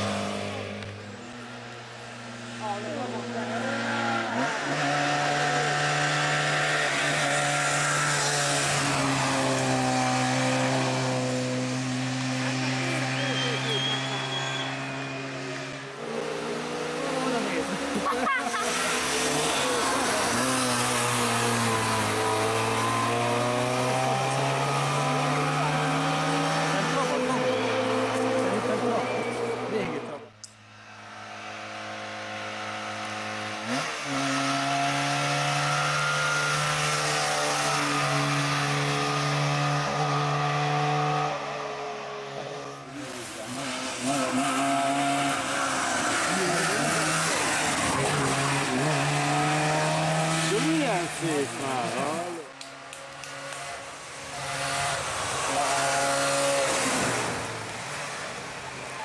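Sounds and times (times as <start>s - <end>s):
two-stroke rally car engine revving: 0.0s - 30.4s, 31.0s - 59.0s.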